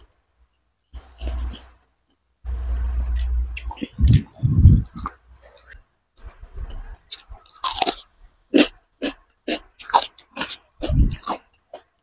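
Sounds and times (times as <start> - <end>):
wet chewing sounds: 3.2 - 12.0.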